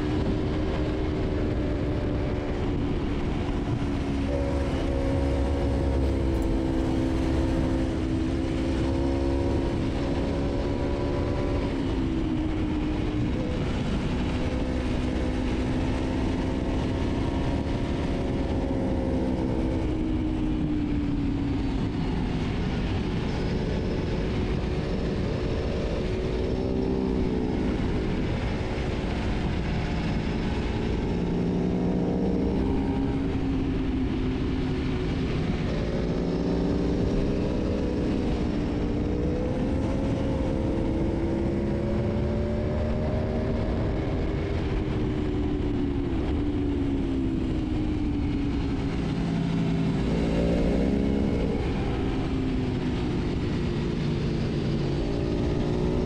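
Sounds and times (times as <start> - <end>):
motorcycle engine revving at speed: 0.0 - 56.0
wind rush: 0.0 - 56.0.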